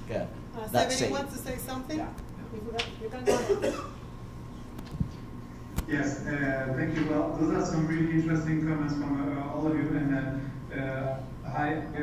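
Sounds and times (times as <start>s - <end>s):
person coughing: 3.2s - 4.0s.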